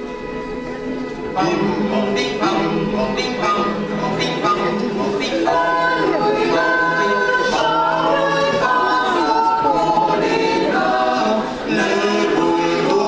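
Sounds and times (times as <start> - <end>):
mixed choir singing a cappella: 1.4 - 13.0.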